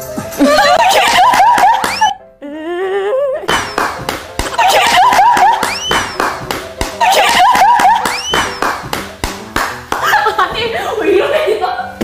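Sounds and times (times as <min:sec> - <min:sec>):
women laughing and squealing: 0:00.4 - 0:02.2, 0:04.4 - 0:06.0, 0:07.0 - 0:08.3, 0:10.0 - 0:12.0
rapid hand claps: 0:03.5 - 0:10.2.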